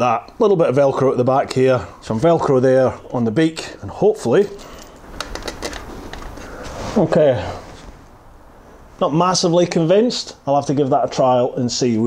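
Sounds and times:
soft rustle: 0:04.3 - 0:09.0.

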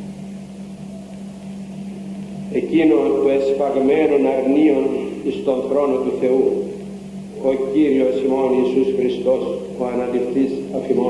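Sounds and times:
background hiss: 0:00.0 - 0:11.0
low electrical hum: 0:00.0 - 0:11.0.

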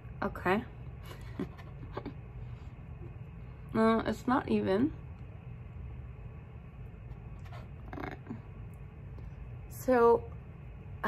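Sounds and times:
low room rumble: 0:00.0 - 0:11.0
woman speaking: 0:00.2 - 0:00.8, 0:03.7 - 0:05.0, 0:07.9 - 0:08.4, 0:09.7 - 0:10.3.

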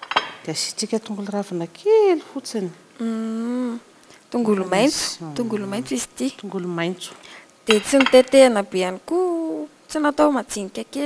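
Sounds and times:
woman humming: 0:03.0 - 0:03.9, 0:05.0 - 0:06.2
woman's voice syllable: 0:04.5 - 0:06.4.

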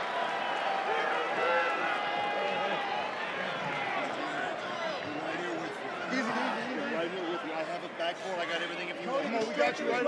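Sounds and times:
crowd shouting and talking: 0:00.0 - 0:10.0.

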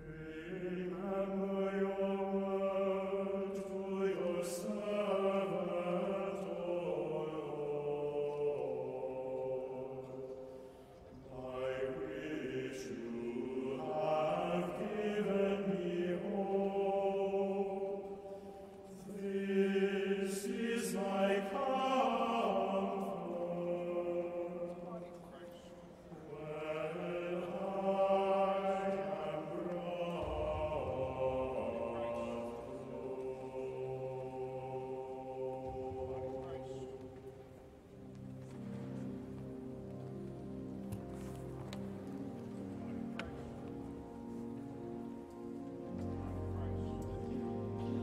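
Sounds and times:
choir singing a chant: 0:00.0 - 0:48.0.

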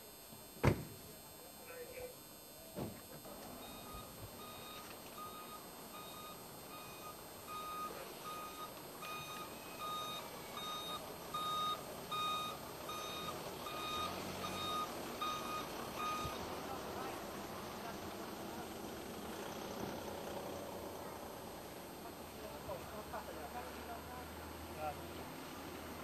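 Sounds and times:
short knock: 0:00.6 - 0:01.0
reversing alarm beeps: 0:02.9 - 0:16.5.

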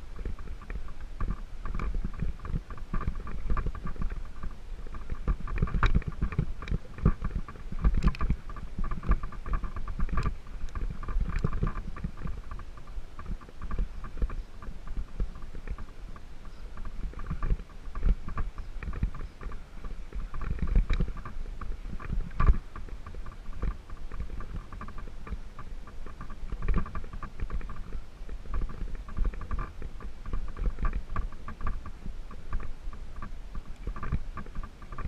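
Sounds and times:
low rumble of bike tyres: 0:00.0 - 0:35.0.

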